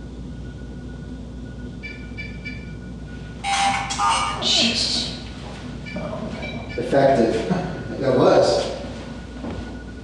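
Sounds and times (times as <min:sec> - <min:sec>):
short electronic beeps: 0:00.4 - 0:04.4, 0:05.8 - 0:07.0
harsh alarm burst: 0:03.4 - 0:08.9.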